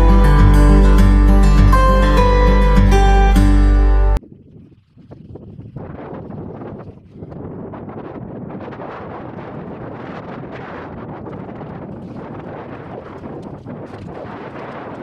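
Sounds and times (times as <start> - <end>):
music: 0.0 - 4.2
wind buffeting microphone: 4.2 - 15.0.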